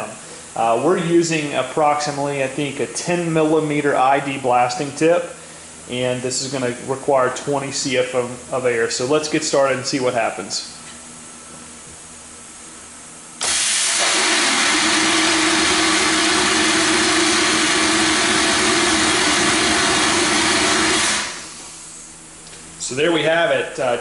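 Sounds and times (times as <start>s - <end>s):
compressed air nozzle hissing: 13.4s - 22.1s
low hum: 13.4s - 23.8s.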